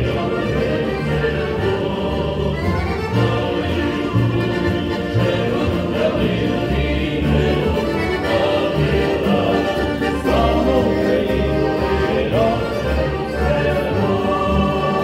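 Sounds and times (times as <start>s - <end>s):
accordion: 0.0s - 15.0s
double bass plucking: 0.0s - 15.0s.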